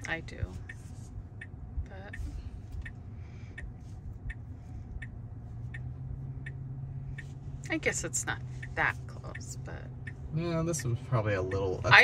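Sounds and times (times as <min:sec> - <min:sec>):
car cabin hum: 0:00.0 - 0:12.0
turn signal clicking: 0:00.0 - 0:12.0.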